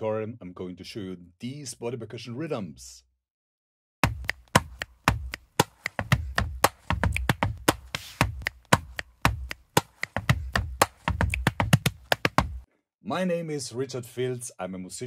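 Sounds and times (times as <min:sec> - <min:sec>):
chest slaps: 0:04.0 - 0:12.6
hand claps: 0:04.0 - 0:12.7
finger snaps: 0:04.2 - 0:11.5.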